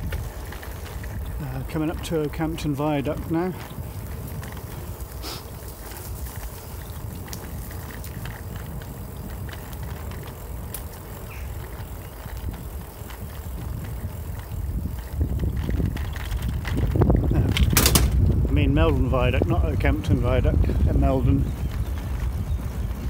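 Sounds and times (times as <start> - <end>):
bicycle tyre rumble on tarmac: 0.0 - 23.0
wind buffeting microphone: 0.0 - 23.0.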